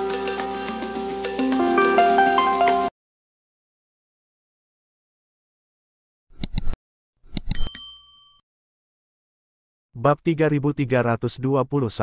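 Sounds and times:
short bell ding: 7.5 - 8.4.

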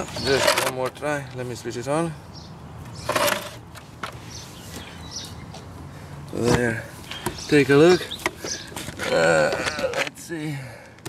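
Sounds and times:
plastic scale scraping on pavement: 0.0 - 1.0, 2.9 - 4.4.

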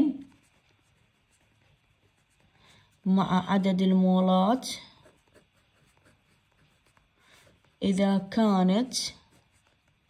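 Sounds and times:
person speaking: 0.0 - 0.7, 2.9 - 5.5, 7.8 - 9.6
pen writing on paper: 0.3 - 2.4.

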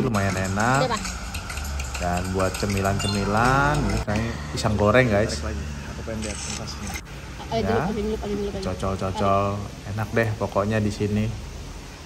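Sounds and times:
people talking: 0.0 - 1.1, 2.0 - 11.4.

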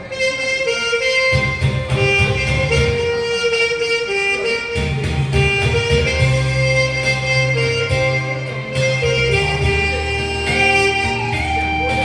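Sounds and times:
backing track with bass line: 0.0 - 12.0
saxophone playing slow melody: 0.0 - 12.0.

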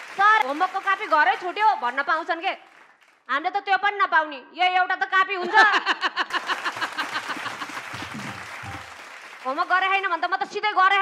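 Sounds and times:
audience applauding: 0.0 - 3.2, 6.2 - 10.4.

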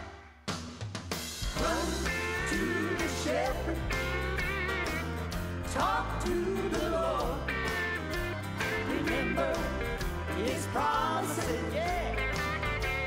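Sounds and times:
country gospel music with guitar: 1.4 - 13.0.

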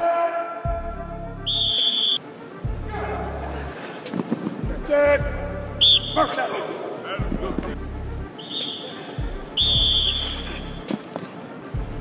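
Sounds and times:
music with heavy bass: 0.7 - 1.7, 2.6 - 3.8, 4.6 - 6.4, 7.2 - 8.4, 9.2 - 10.9, 11.8 - 12.0
sharp whistle blast: 1.4 - 2.4, 5.8 - 6.4, 8.3 - 10.8.

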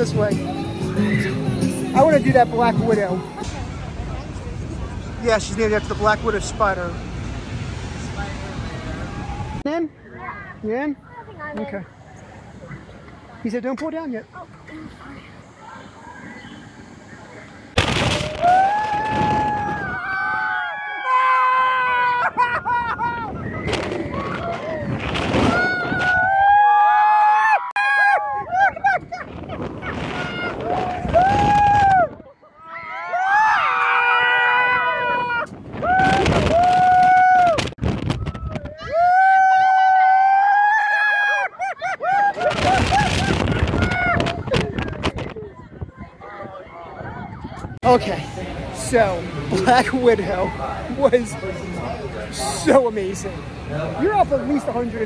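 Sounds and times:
wind noise on microphone: 17.8 - 20.6, 22.3 - 26.6, 28.3 - 32.3, 34.7 - 39.2, 42.3 - 48.0
riders screaming and whooping: 18.1 - 45.0.

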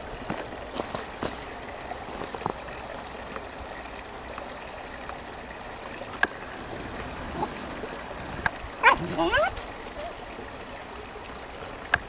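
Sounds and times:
stream flowing: 0.0 - 12.0.

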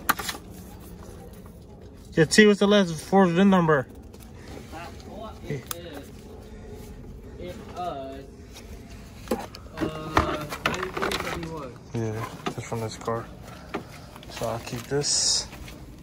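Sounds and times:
distant voices talking: 0.0 - 16.0.

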